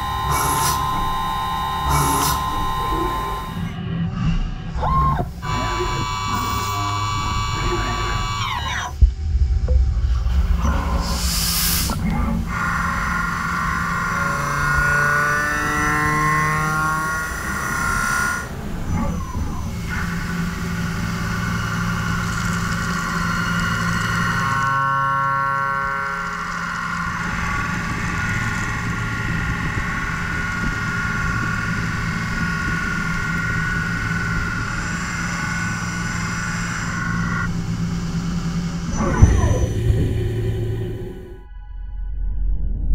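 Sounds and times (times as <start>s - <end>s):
cnc machine cutting metal: 0.0s - 4.0s, 5.0s - 9.0s, 10.4s - 41.3s.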